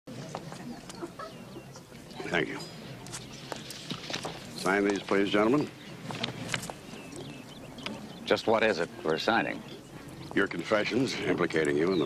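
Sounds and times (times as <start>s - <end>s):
murmur of diners: 0.1s - 12.0s
high bird chirps: 6.8s - 8.5s.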